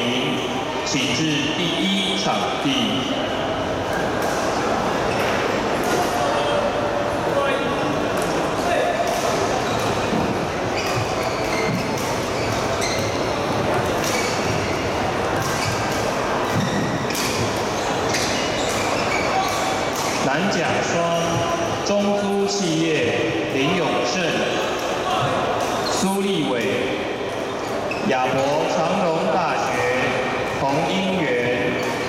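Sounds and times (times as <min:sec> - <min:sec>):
echoing hall background noise: 0:00.0 - 0:32.0
shoes squeaking on court floor: 0:03.8 - 0:06.5, 0:09.1 - 0:22.0, 0:24.6 - 0:26.7, 0:27.3 - 0:32.0.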